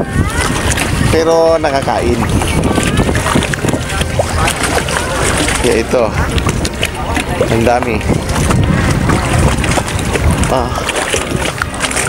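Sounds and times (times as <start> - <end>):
people talking: 0.0 - 12.0
wind buffeting microphone: 0.0 - 12.0.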